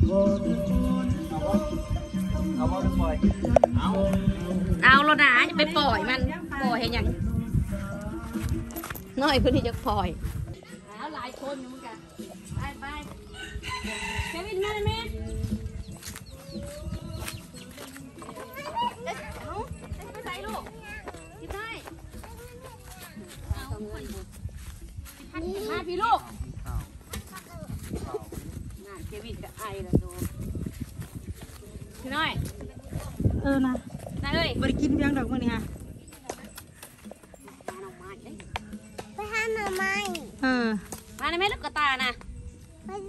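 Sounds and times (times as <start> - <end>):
people talking and calling out: 0.0 - 43.0
rooster crowing: 13.3 - 14.8.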